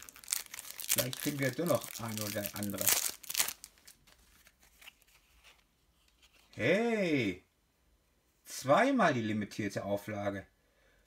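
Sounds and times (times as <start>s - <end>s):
trading cards rustling: 0.0s - 6.6s.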